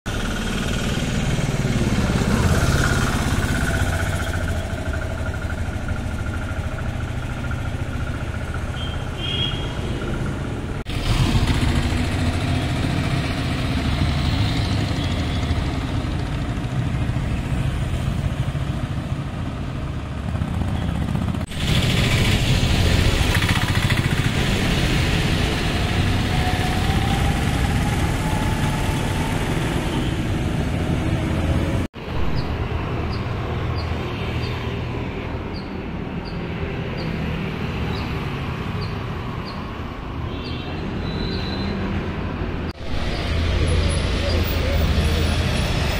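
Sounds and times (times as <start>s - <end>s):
motorcycles passing: 0.1s - 45.9s.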